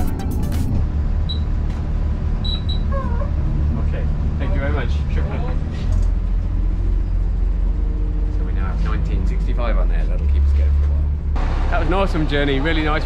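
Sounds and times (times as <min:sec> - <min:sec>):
bus engine rumble: 0:00.0 - 0:13.0.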